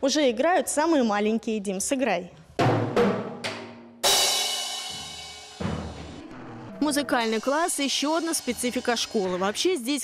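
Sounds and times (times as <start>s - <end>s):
drum hit: 2.6s - 6.4s
cymbal crash: 4.0s - 6.2s, 7.3s - 9.6s.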